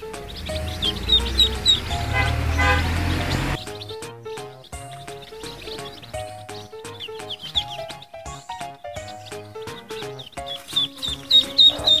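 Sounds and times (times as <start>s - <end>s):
background music: 0.0s - 12.0s
chicks peeping: 0.0s - 12.0s.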